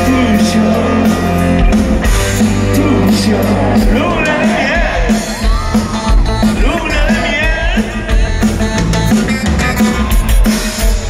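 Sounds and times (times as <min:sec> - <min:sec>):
bass guitar: 0:00.0 - 0:11.0
drum kit beat: 0:00.0 - 0:11.0
electric guitars: 0:00.0 - 0:11.0.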